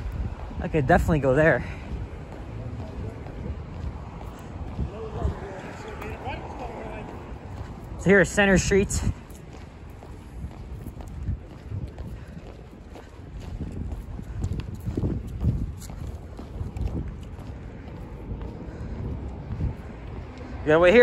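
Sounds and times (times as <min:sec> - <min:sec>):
footsteps on pavement: 0:00.0 - 0:21.0
wind rumble on microphone: 0:00.0 - 0:21.0.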